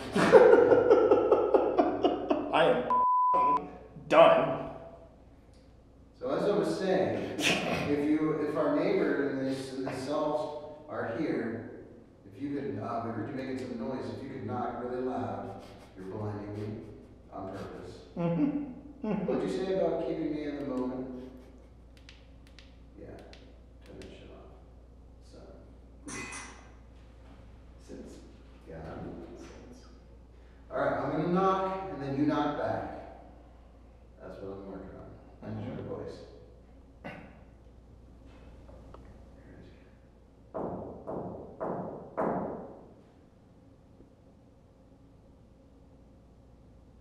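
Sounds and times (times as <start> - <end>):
knocks on a hard surface: 40.6 - 42.8.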